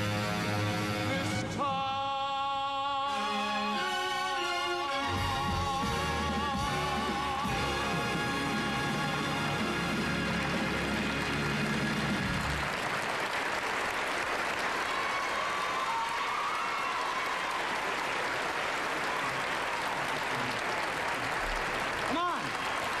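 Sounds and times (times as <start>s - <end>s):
studio audience applauding: 6.6s - 23.0s.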